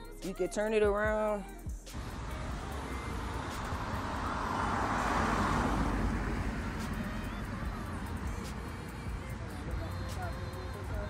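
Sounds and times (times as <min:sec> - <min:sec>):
vehicle passing by: 0:01.9 - 0:11.0.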